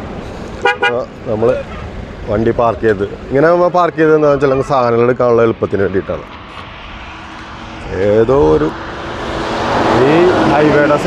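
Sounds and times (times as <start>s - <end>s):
highway traffic rumble: 0.0s - 11.0s
man talking: 0.8s - 6.4s, 7.8s - 8.8s, 9.9s - 11.0s.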